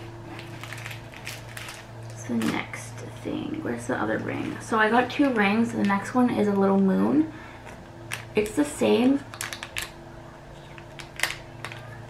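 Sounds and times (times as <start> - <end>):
steady low hum: 0.0 - 12.0
plastic packet crinkling: 0.3 - 2.8, 8.0 - 10.0, 10.6 - 12.0.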